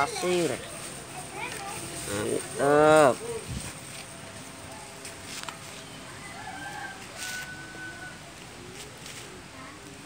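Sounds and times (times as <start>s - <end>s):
rooster crowing: 6.1s - 8.4s.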